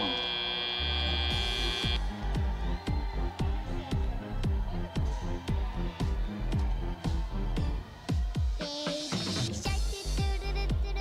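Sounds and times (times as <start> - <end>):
arena buzzer long steady tone: 0.0 - 2.0
music with steady bass beat: 0.9 - 11.0.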